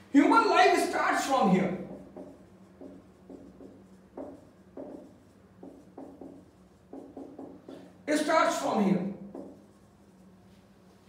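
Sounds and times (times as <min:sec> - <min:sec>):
marker writing on whiteboard: 0:00.7 - 0:10.6.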